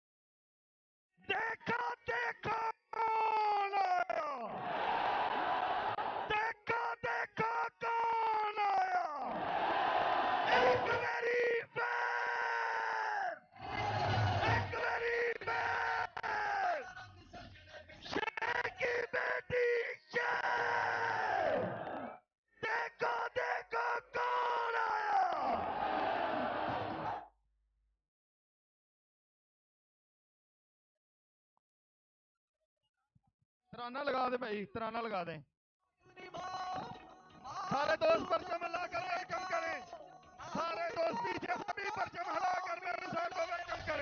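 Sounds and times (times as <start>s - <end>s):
man shouting over public address: 1.2s - 4.6s, 6.1s - 9.4s, 10.3s - 17.0s, 18.1s - 25.7s, 36.1s - 44.0s
crowd noise: 4.6s - 6.3s, 9.4s - 11.0s, 13.7s - 14.8s.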